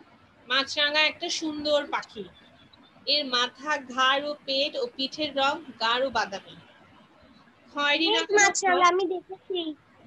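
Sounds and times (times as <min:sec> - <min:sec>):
child chanting: 0:08.1 - 0:09.7
short voice sounds: 0:08.1 - 0:09.8.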